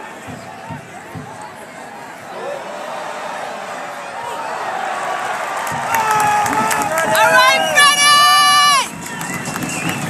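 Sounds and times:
crowd murmur: 0:00.0 - 0:10.0.

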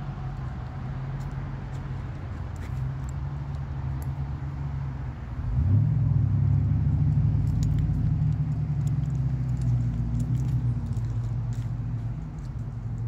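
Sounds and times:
vehicle engine rumble: 0:00.0 - 0:13.0.

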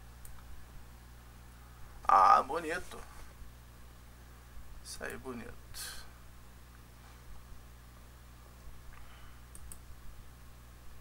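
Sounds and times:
low steady hum: 0:00.0 - 0:11.0
computer clicks: 0:09.5 - 0:09.9.

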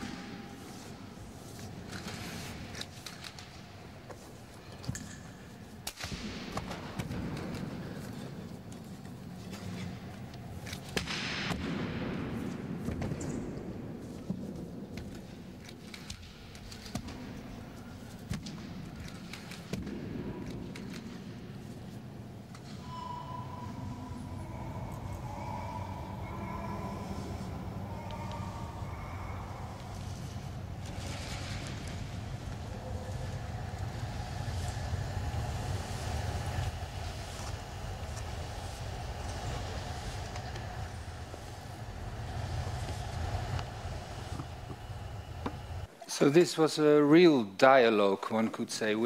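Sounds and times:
long held high tones: 0:22.5 - 0:31.2
steady low rumble: 0:23.7 - 0:45.9.

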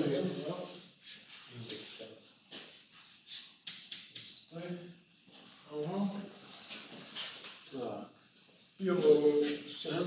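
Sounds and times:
chalk scratching on blackboard: 0:02.6 - 0:04.5.

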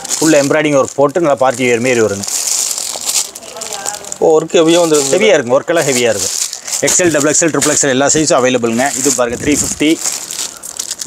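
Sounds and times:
man talking: 0:00.0 - 0:02.3, 0:04.2 - 0:10.1
plastic packets crinkling: 0:00.0 - 0:11.0.

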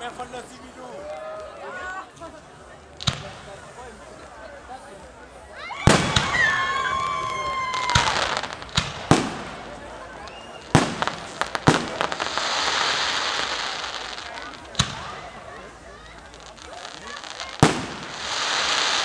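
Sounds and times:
steady hiss: 0:03.0 - 0:19.0
firework shells bursting: 0:07.6 - 0:15.3, 0:16.2 - 0:19.0.

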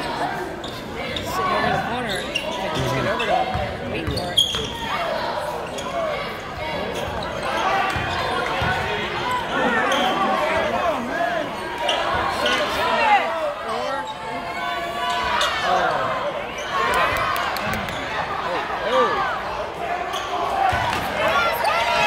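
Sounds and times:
voices echoing in gym: 0:00.0 - 0:22.0
basketball bouncing on court: 0:03.5 - 0:04.8, 0:07.9 - 0:08.8.

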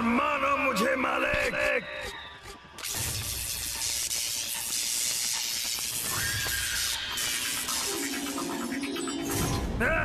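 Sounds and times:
burst of noise: 0:02.8 - 0:08.7.

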